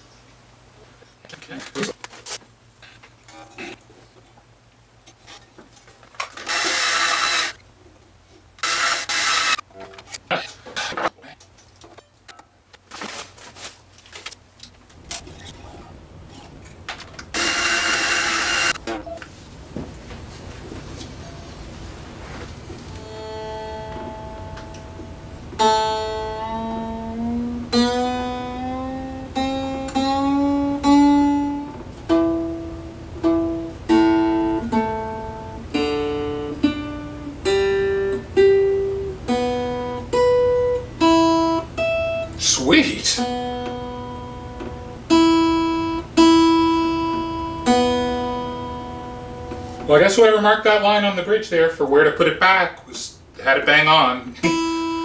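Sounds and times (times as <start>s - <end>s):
guitar note sliding upward: 23.0s - 32.4s
guitar strings plucked: 23.0s - 42.5s, 43.2s - 49.9s, 54.4s - 55.0s.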